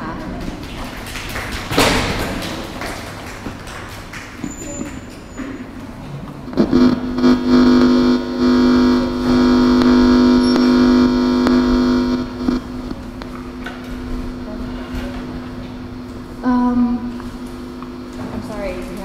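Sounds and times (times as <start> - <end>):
microphone feedback howl: 6.6 - 12.9.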